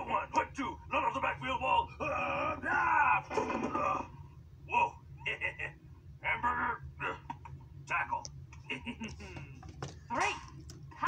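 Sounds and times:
cartoon character yelling and groaning: 2.0 - 3.3.

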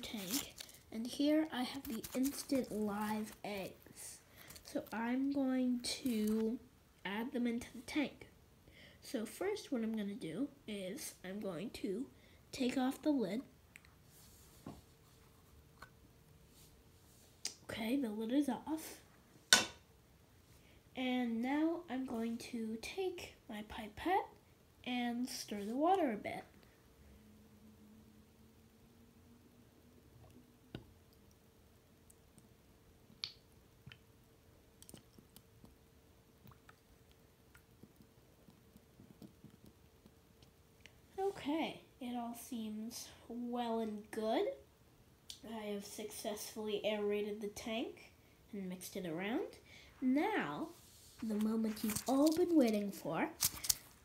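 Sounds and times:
faint steady hum: 0.0 - 54.0
pipette clicks and squishes: 34.8 - 35.8, 36.4 - 39.8.

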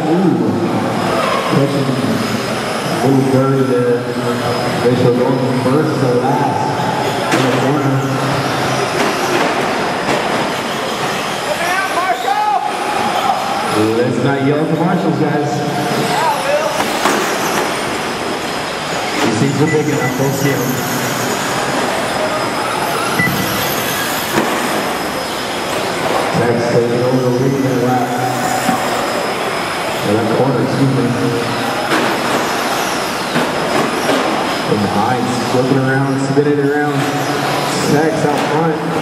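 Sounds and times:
rc trucks motors and tyres whirring: 0.6 - 14.2, 15.7 - 38.3.

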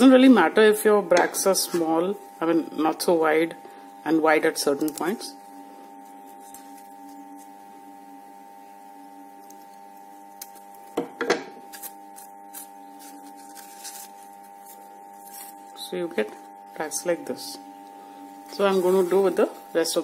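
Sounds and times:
steady hum: 0.0 - 20.0
scissors snipping paper: 11.7 - 15.6
paper handling: 11.7 - 16.4.

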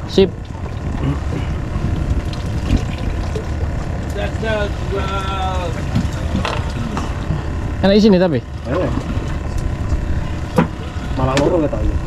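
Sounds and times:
boat low rumble: 0.0 - 12.0.

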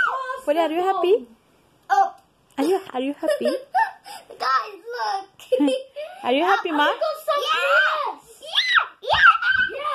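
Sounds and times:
girl squealing with delight: 8.4 - 9.9.

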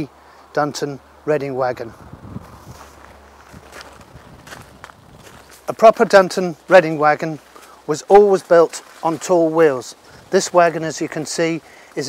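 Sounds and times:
footsteps on gravel: 2.4 - 6.1, 6.7 - 11.0.

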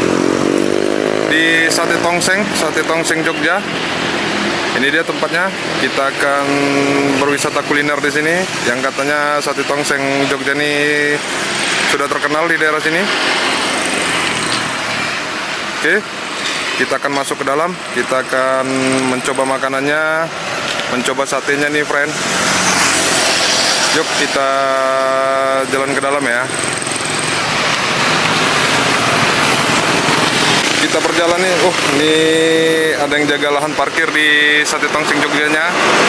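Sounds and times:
traffic engine and road noise: 0.0 - 36.0
vehicle passing: 0.0 - 36.0
small engine running: 10.6 - 16.8, 22.0 - 33.2.

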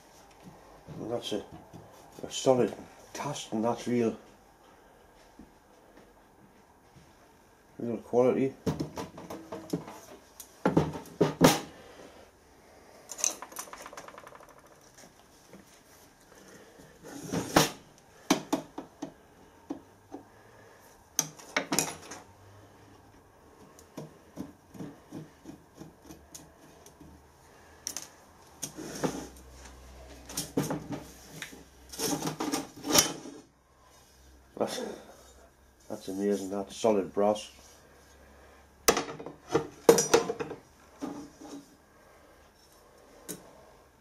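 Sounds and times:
wooden blocks knocking: 13.3 - 14.9.

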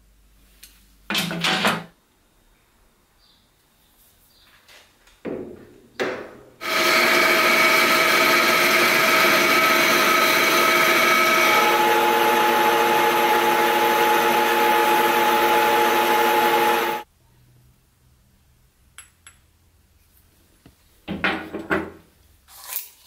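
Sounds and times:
lathe whining while cutting metal: 6.6 - 17.0.

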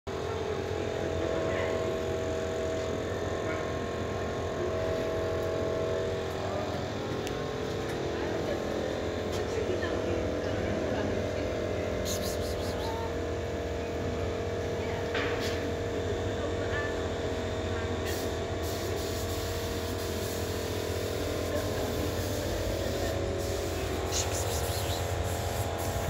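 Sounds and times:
mechanical hum with low rumble: 0.1 - 26.0.

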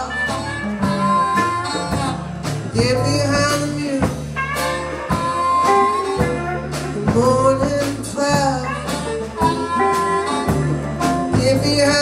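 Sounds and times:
harmonica long notes: 0.0 - 2.8, 4.4 - 7.3, 8.6 - 11.4
drum hits: 0.0 - 12.0
live blues band playing: 0.0 - 12.0.

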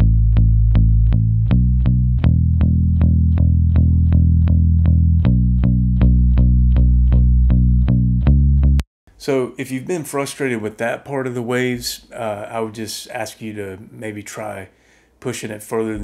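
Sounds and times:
electric bass guitar notes: 0.0 - 8.8.

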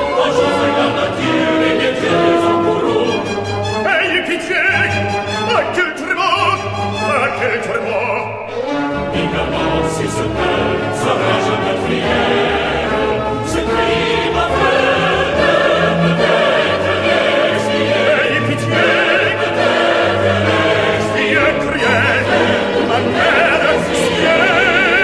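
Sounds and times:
opera chorus singing: 0.0 - 25.0
orchestra playing: 0.0 - 25.0.

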